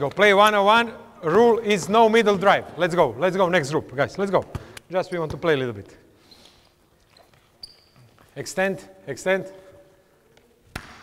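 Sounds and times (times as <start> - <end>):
sneaker squeak on court floor: 7.1 - 8.2.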